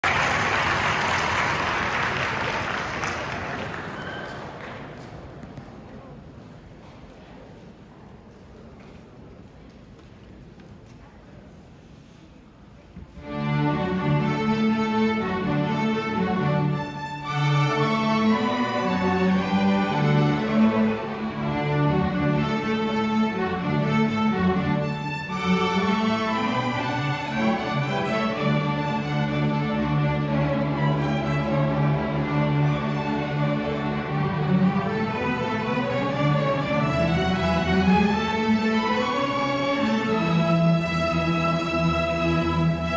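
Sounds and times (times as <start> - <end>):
string orchestra playing: 13.1 - 42.9
cellos bowing: 13.2 - 42.9
violins bowing: 13.2 - 42.9.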